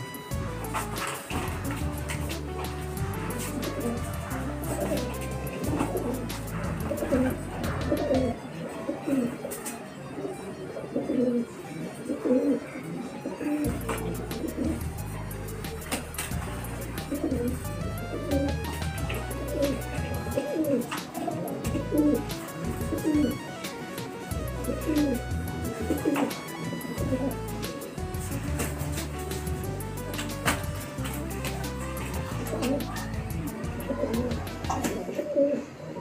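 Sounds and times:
background music with bass line: 0.0 - 8.4, 13.6 - 35.0
pigeons cooing: 0.0 - 36.0.

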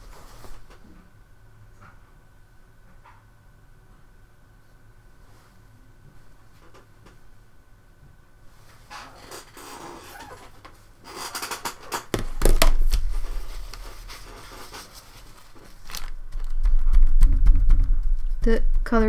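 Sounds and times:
paper rustling and scraping: 12.6 - 17.1
fingertip rubbing paper: 12.9 - 19.0
low thump: 16.6 - 19.0.

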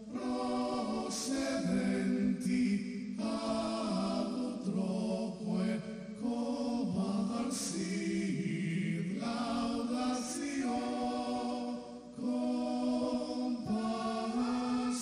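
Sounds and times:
voices singing slow chant: 0.0 - 15.0.

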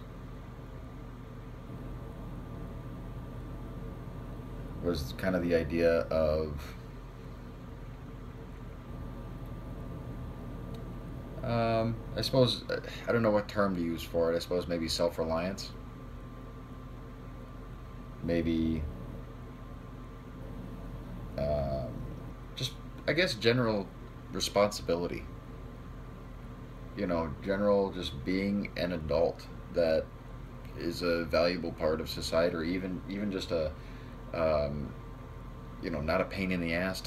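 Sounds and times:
room noise hum and hiss: 0.0 - 37.0.

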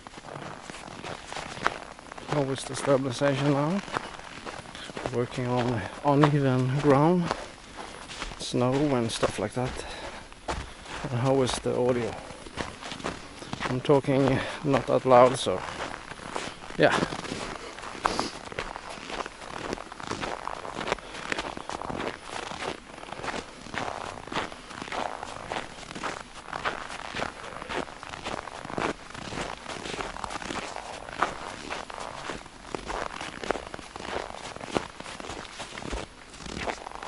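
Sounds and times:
footsteps crunching in snow: 0.0 - 37.0.

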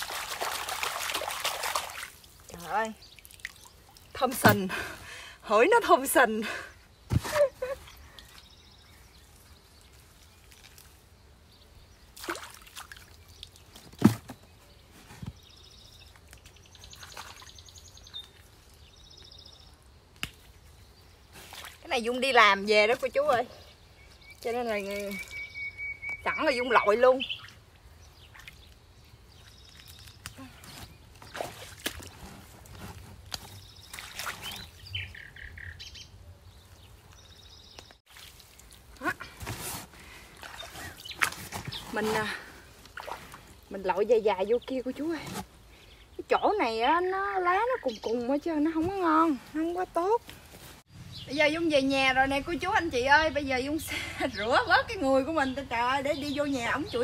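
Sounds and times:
water splashing: 0.0 - 4.9, 12.2 - 14.2, 31.2 - 32.2, 33.8 - 34.9, 38.1 - 39.4, 40.0 - 44.0
splashes and rustles of wet plants: 0.0 - 35.2, 36.6 - 51.1
birds chirping: 12.9 - 31.7, 32.7 - 38.3, 43.6 - 50.2, 50.9 - 57.0
bird trilling: 25.0 - 27.6.

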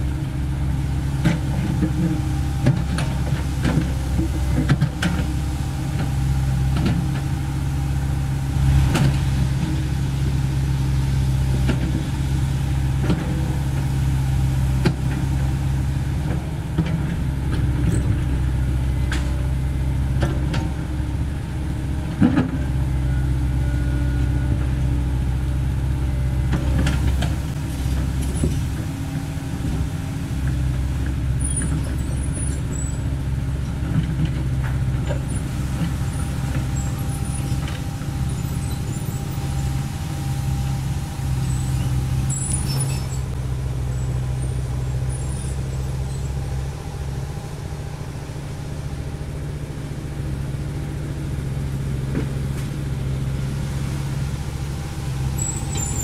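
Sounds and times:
excavator diesel engine running: 0.0 - 56.0.

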